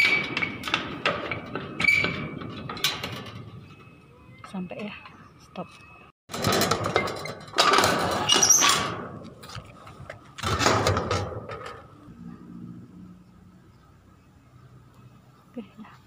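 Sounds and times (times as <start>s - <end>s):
rusty gate scraping and rattling: 0.0s - 5.2s, 6.3s - 9.6s, 10.3s - 12.7s.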